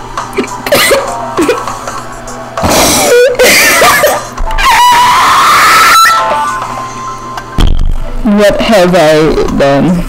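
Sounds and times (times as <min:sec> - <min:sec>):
backing music: 0:00.0 - 0:04.7, 0:06.1 - 0:08.2.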